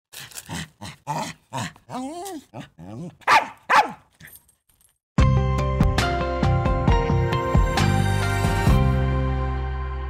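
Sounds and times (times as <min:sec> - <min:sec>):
dog yelping: 0:01.1 - 0:04.3
small dog barking: 0:01.9 - 0:04.1.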